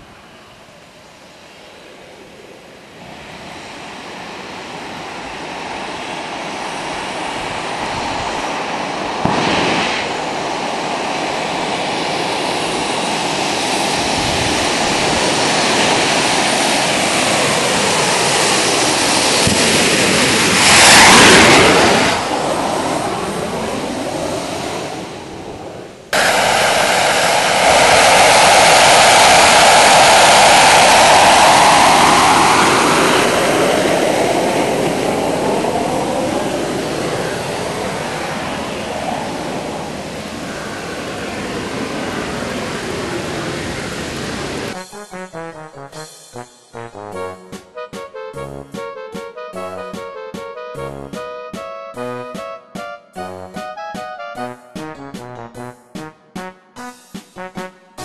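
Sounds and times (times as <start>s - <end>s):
jet engine kart passing: 3.0s - 44.8s.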